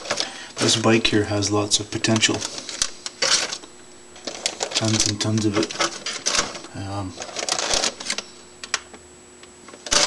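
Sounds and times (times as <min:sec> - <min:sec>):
plastic bag crinkling: 0:04.2 - 0:08.3.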